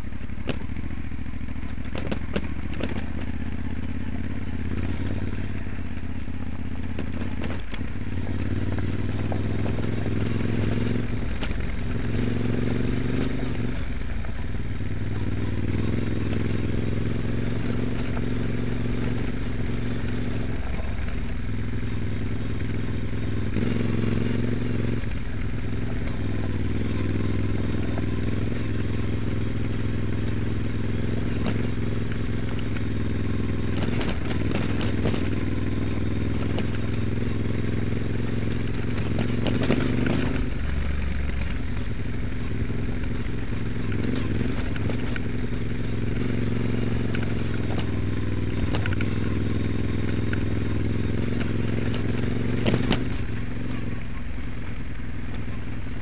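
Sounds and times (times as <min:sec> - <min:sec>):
motorcycle engine running: 0:00.0 - 0:56.0
bike knocking over stones: 0:01.7 - 0:03.4, 0:31.4 - 0:37.1.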